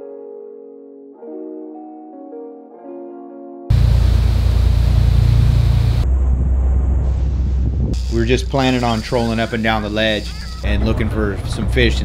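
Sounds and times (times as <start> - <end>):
piano music: 0.0 - 6.3
boat engine rumble: 3.7 - 8.5
wind on microphone: 5.9 - 8.1.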